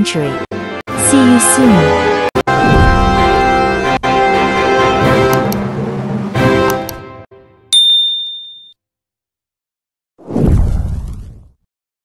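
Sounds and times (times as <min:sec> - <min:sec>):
background music chords: 0:00.0 - 0:08.0
bright bell ding: 0:07.7 - 0:08.7.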